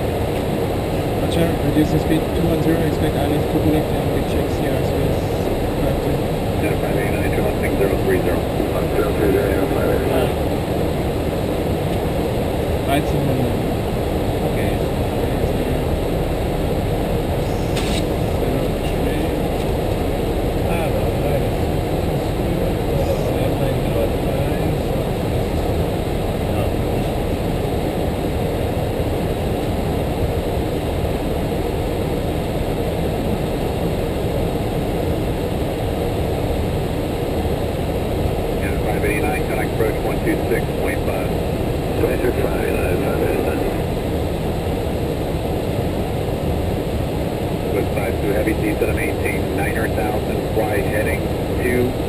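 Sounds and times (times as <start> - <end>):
cockpit airflow and engine hum: 0.0 - 52.0
faint radio voice: 1.2 - 10.5, 12.9 - 13.7, 14.4 - 16.0, 17.4 - 19.6, 20.7 - 25.8, 26.5 - 27.5, 38.6 - 41.3, 41.9 - 43.9, 47.7 - 52.0.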